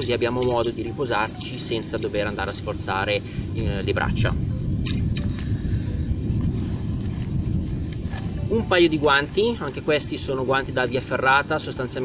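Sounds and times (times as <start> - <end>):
gear rustling in backpack: 0.0 - 2.8, 6.3 - 8.4
wind rumble on microphone: 0.0 - 12.0.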